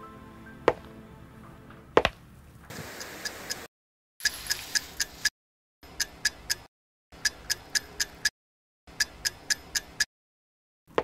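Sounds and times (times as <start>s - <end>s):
clock ticking: 3.0s - 8.3s, 8.9s - 10.1s.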